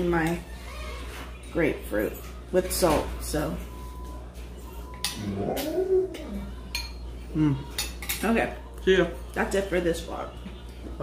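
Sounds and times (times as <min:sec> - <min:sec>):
spoons clinking against bowls: 0:04.6 - 0:08.4
person humming mmm: 0:05.2 - 0:06.4, 0:07.3 - 0:07.7.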